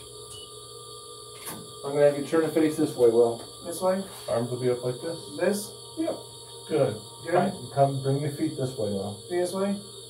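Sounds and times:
high electronic whine: 0:00.0 - 0:10.0
faint hiss: 0:01.3 - 0:10.0.

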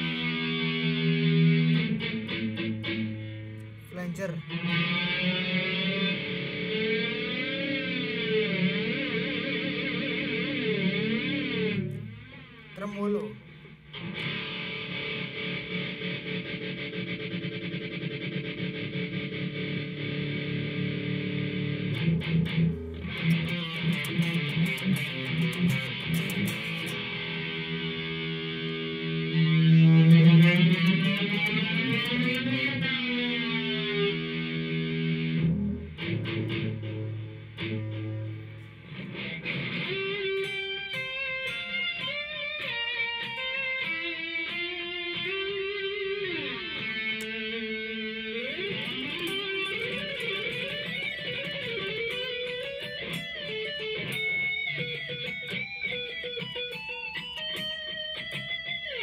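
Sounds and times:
clean guitar notes with slides: 0:00.0 - 0:59.0
distorted electric guitar chords: 0:00.0 - 0:59.0.

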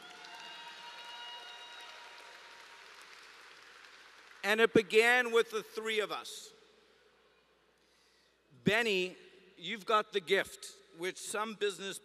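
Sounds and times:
audience applauding: 0:00.0 - 0:04.7.

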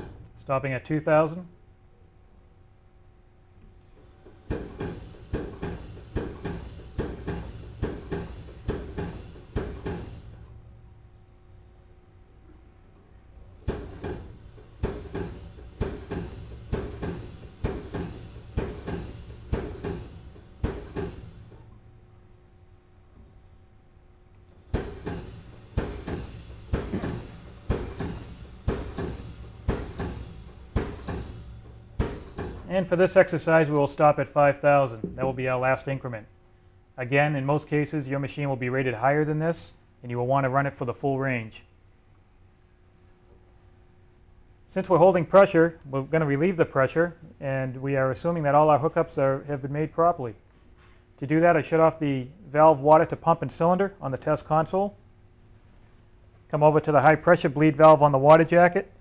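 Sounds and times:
pump knocking strokes: 0:03.8 - 0:10.5, 0:13.5 - 0:21.8, 0:24.4 - 0:32.8
pump clicking: 0:24.7 - 0:32.7.

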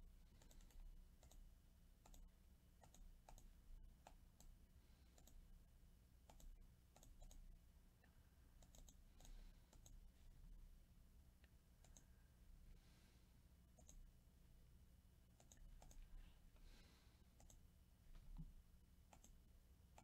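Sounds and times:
steady low hum: 0:00.0 - 0:20.0
computer mouse and key clicks: 0:00.3 - 0:05.4, 0:06.2 - 0:07.4, 0:08.6 - 0:10.0, 0:11.8 - 0:12.1, 0:13.7 - 0:14.1, 0:15.4 - 0:16.1, 0:17.4 - 0:17.6, 0:19.1 - 0:20.0.

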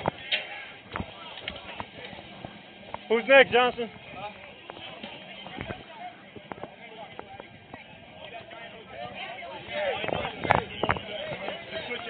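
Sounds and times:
distant voices murmuring: 0:00.0 - 0:12.0.

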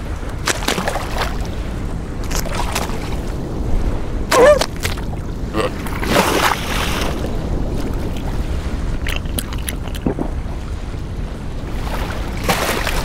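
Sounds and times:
sea: 0:00.0 - 0:13.0
wind: 0:00.0 - 0:13.0.

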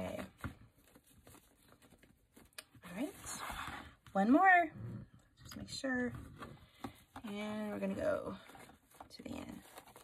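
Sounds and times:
fabric ribbon rustling: 0:00.0 - 0:04.4, 0:07.2 - 0:10.0.

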